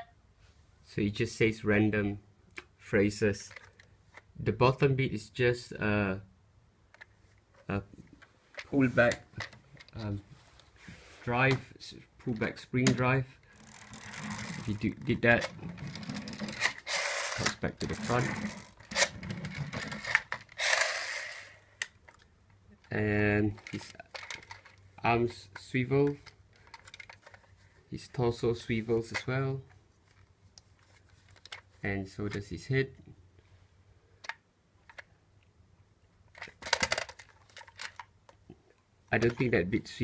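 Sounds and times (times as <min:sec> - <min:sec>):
plastic toy handling noise: 0:03.3 - 0:04.4, 0:06.9 - 0:32.8, 0:34.1 - 0:35.2, 0:36.2 - 0:38.5, 0:39.1 - 0:39.6
plastic toy clicks and knocks: 0:13.6 - 0:22.2, 0:23.5 - 0:24.8, 0:26.1 - 0:27.5, 0:36.3 - 0:38.1
toy clicks: 0:16.0 - 0:19.1, 0:19.8 - 0:22.2.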